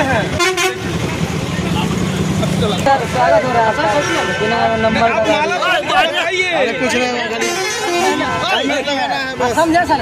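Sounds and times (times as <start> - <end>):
vehicle engine running: 0.0 - 5.6
faint crowd chatter: 0.0 - 10.0.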